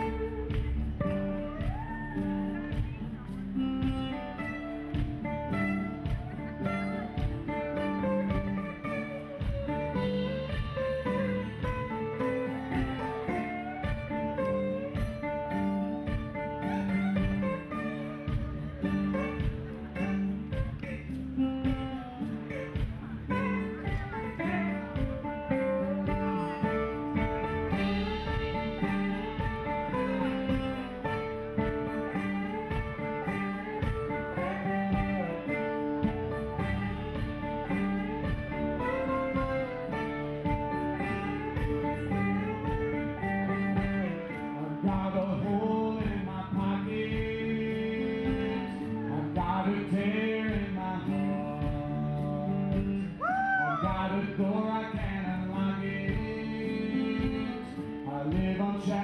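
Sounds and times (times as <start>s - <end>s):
acoustic string-band music: 0.0s - 59.0s.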